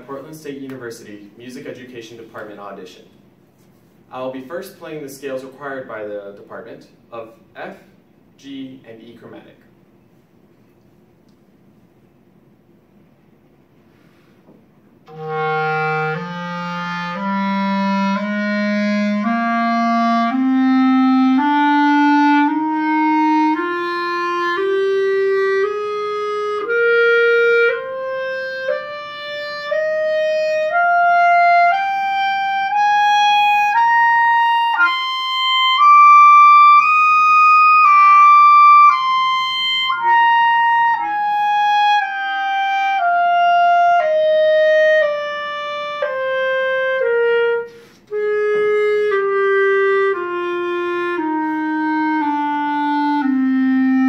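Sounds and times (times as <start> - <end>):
clarinet playing a scale: 15.1 - 54.0.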